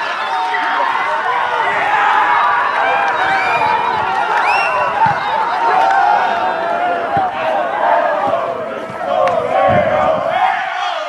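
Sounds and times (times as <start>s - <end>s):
group shouting and cheering: 0.0s - 11.0s.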